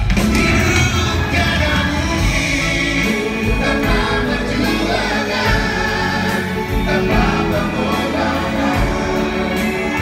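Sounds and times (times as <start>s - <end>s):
group of singers: 0.0s - 10.0s
orchestra and band: 0.0s - 10.0s.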